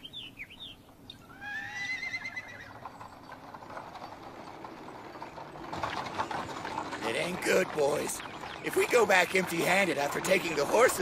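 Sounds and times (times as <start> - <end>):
horse whinnying: 1.2 - 3.0
hooves clip-clopping: 1.8 - 11.0.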